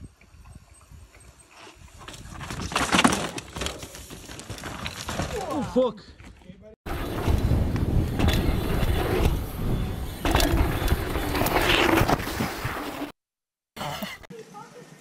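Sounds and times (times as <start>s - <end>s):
bike crashing: 2.1s - 5.6s, 6.9s - 13.1s
wind rumble on microphone: 6.9s - 12.7s
bike tyres skidding on dirt: 6.9s - 13.2s.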